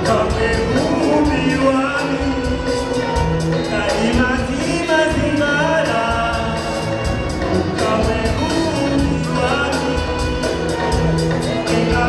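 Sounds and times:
live band with steady beat: 0.0s - 12.0s
man singing into microphone: 0.0s - 12.0s.

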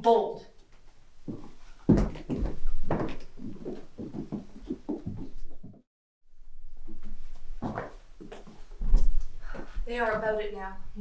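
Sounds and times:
footsteps on stage floor: 0.7s - 5.8s, 7.6s - 9.8s.

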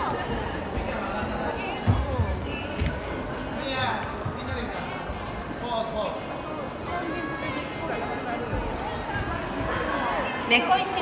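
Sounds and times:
audience chatter in hall: 0.0s - 11.0s.

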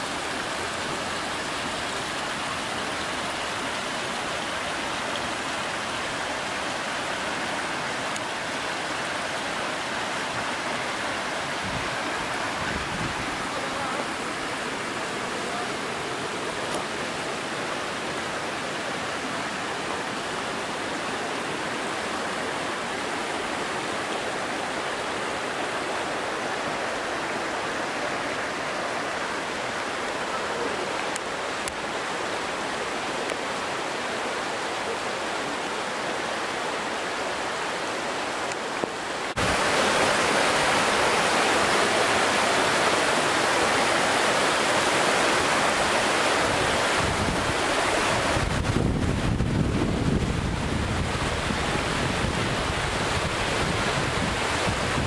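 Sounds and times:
river rushing over rocks: 0.0s - 55.0s
white-water rapids: 0.0s - 55.0s.

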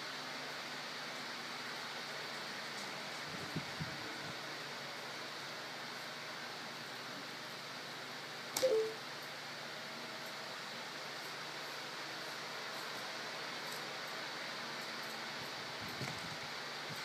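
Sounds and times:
room noise hiss: 0.0s - 17.0s.

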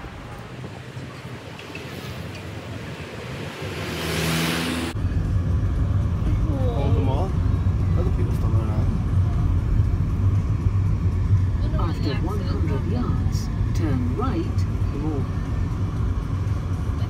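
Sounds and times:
crowd chatter: 0.0s - 3.0s
motor vehicle passing: 1.4s - 8.1s
rough low rumble: 4.9s - 17.0s.

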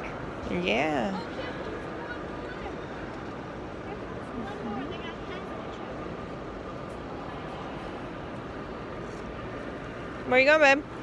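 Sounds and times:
faint distant voices: 0.0s - 10.8s
crowd hubbub: 0.0s - 11.0s.

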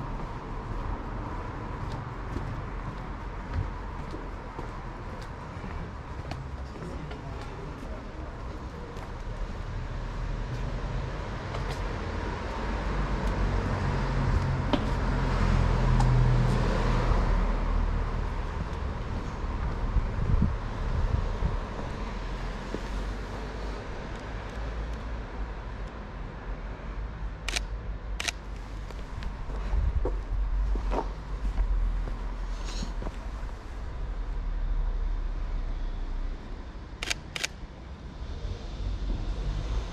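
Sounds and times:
car passing by: 9.7s - 24.9s, 38.0s - 39.9s
sharp clicks: 27.5s - 28.4s, 37.0s - 37.6s.

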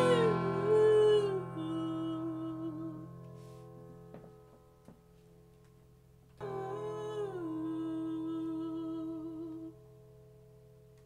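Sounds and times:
faint steady low hum: 0.0s - 11.0s
person humming a held note: 6.4s - 9.8s.

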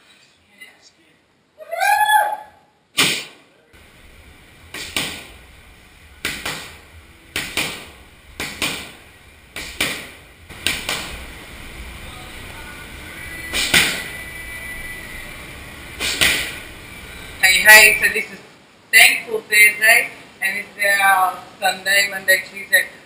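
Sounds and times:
strikes landing on padding: 4.7s - 5.3s, 6.2s - 9.0s, 9.6s - 11.2s.

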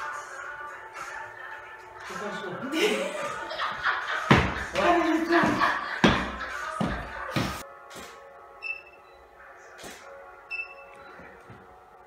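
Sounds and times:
faint background music: 0.0s - 12.0s
high electronic camera beeps: 8.6s - 9.2s.

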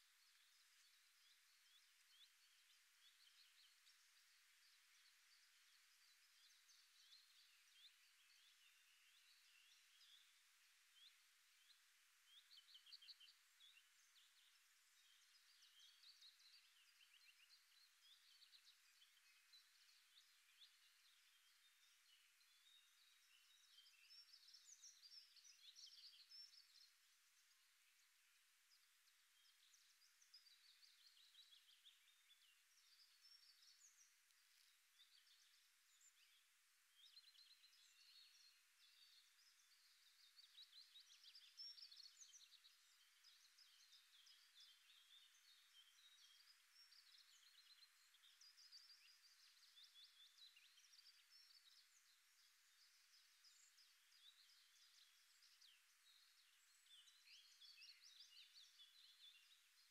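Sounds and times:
faint birdsong: 0.0s - 59.9s.

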